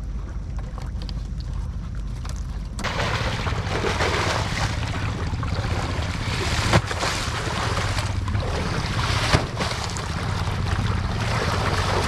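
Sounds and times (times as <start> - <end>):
low steady rumble: 0.0 - 12.0
water rushing and splashing: 2.8 - 12.0.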